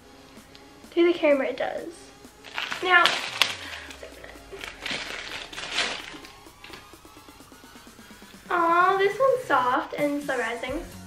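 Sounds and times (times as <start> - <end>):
quiet background music: 0.0 - 11.0
plastic bag crinkling: 2.4 - 7.0.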